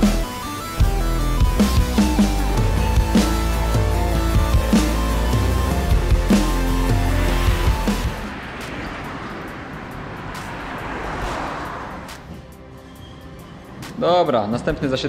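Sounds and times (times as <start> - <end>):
music with heavy drum beat: 0.0 - 8.4
vehicle passing: 1.0 - 14.8.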